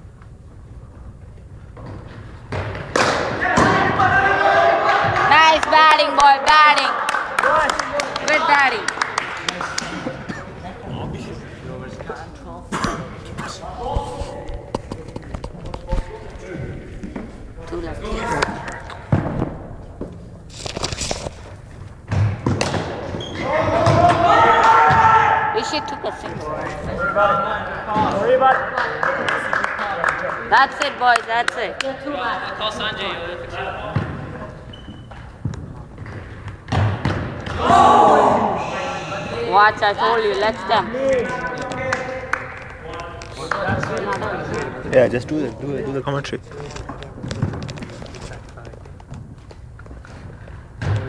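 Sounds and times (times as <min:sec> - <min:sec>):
people talking in a hall: 0:00.8 - 0:51.0
dull thumps in a hall: 0:01.7 - 0:05.3, 0:09.8 - 0:20.4, 0:21.7 - 0:25.5, 0:33.0 - 0:38.5, 0:50.6 - 0:51.0.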